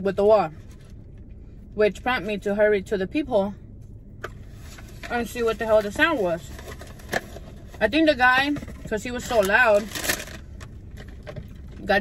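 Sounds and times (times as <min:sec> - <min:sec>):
plastic snack bag crinkling: 0:09.2 - 0:11.8.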